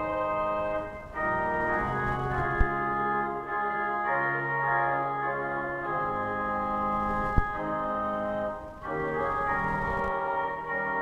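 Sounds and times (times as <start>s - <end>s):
pipe organ playing sustained chords: 0.0s - 11.0s.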